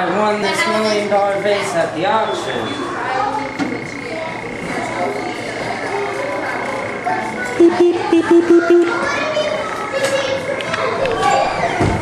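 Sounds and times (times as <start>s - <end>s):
faint background voices: 0.0s - 12.0s
high-pitched electronic whine: 0.6s - 9.1s.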